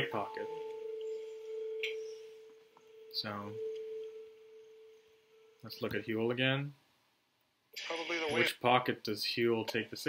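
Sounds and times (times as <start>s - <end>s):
faint higher tone: 0.0s - 6.1s
steady pure tone: 0.0s - 6.6s.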